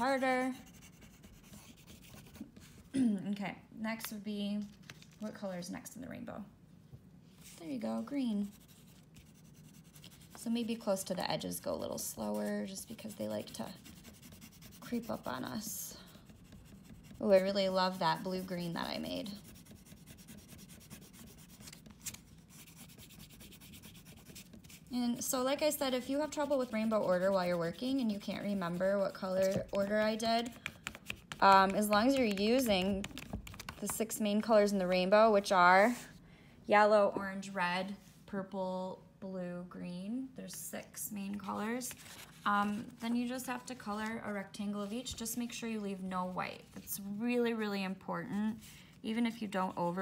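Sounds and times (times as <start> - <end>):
oil pastel rubbing on paper: 0.1 - 2.8, 7.4 - 34.0.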